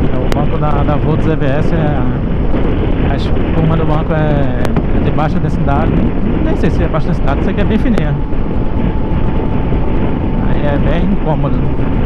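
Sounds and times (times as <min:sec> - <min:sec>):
wind and road noise: 0:00.0 - 0:12.0.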